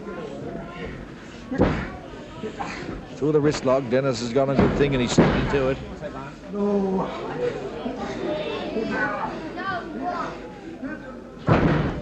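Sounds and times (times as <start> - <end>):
crowd chatter: 0.0 - 12.0
heavy thud in wrestling ring: 11.5 - 12.0.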